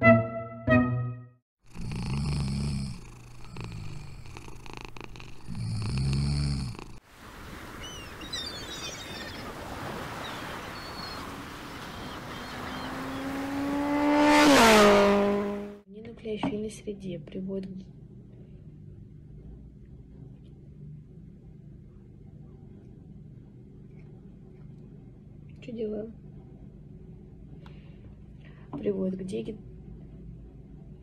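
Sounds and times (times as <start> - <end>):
dog snoring: 1.6 - 7.0
windy hiss: 5.8 - 12.9
long rising call: 7.7 - 15.8.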